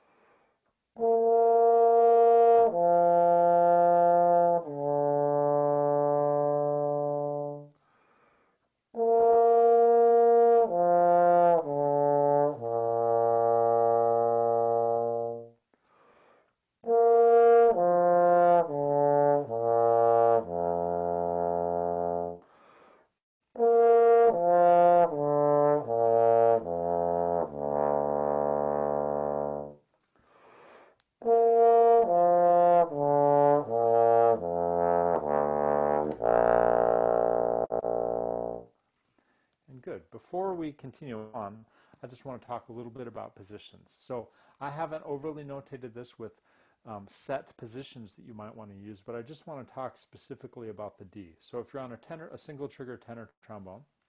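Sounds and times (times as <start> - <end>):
trombone playing slurred arpeggios: 1.0 - 7.7, 9.0 - 15.5, 16.8 - 22.4, 23.6 - 29.8, 31.2 - 38.7.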